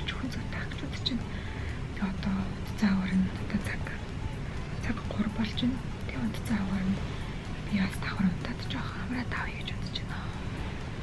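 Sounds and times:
woman whispering: 0.0s - 1.3s, 1.9s - 4.1s, 7.7s - 10.6s
background music: 0.0s - 11.0s.

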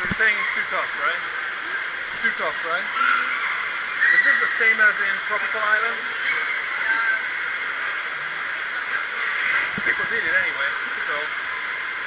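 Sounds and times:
running water rushing: 0.0s - 12.0s.

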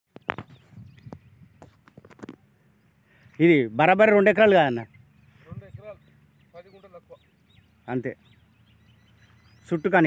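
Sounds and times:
faint bird chirps: 0.1s - 3.8s, 4.6s - 10.0s.

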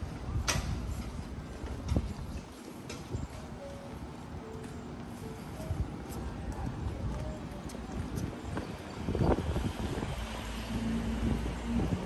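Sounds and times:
faint voices of passers-by: 0.0s - 12.0s
footsteps on pavement: 4.4s - 10.5s.

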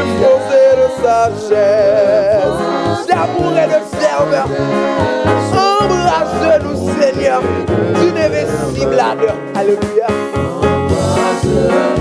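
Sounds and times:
instrumental accompaniment with beat: 0.0s - 12.0s
man singing a hymn: 0.0s - 12.0s.

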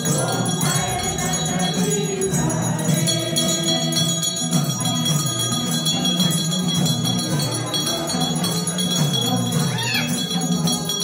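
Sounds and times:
group singing devotional song: 0.0s - 11.0s
small hand bells ringing: 0.0s - 11.0s.

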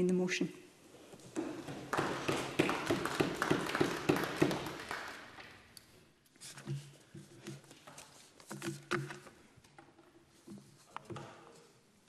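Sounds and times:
people clapping in rhythm: 1.3s - 5.8s.

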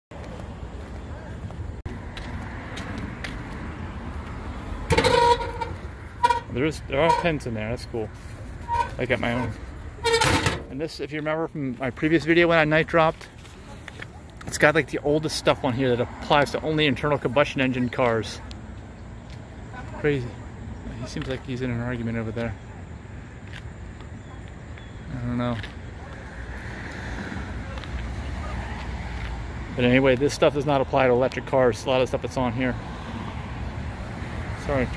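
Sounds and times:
passing vehicles rushing: 0.2s - 24.0s, 25.1s - 34.9s
outdoor background rumble: 0.2s - 30.0s.

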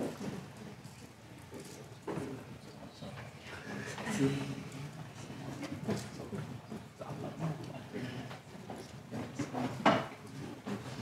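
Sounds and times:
scattered knocks and clicks: 8.6s - 11.0s.

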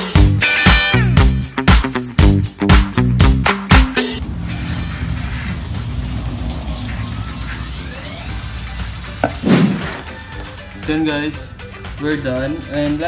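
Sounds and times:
background music: 0.0s - 4.2s, 5.8s - 13.0s
garden hose spraying water: 4.2s - 10.1s.

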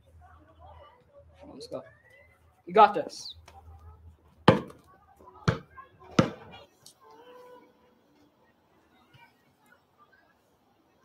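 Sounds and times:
basketball bouncing on concrete: 4.4s - 6.5s.

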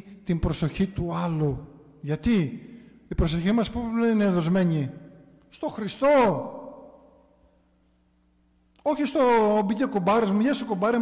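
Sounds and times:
man's voice with reverberation: 0.0s - 7.3s, 8.8s - 11.0s.

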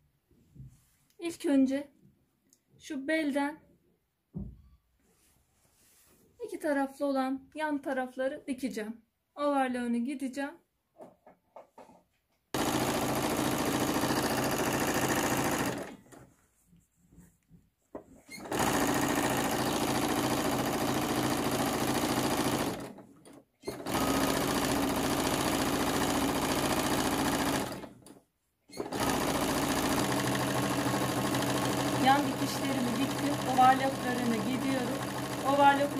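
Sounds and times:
sewing machine stitching: 12.6s - 16.2s, 18.3s - 35.9s.

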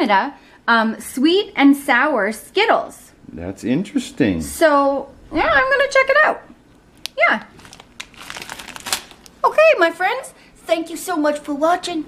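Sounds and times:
woman speaking: 0.0s - 3.2s, 4.5s - 7.6s, 9.4s - 12.0s
plastic candy bag crinkling: 7.0s - 9.5s.

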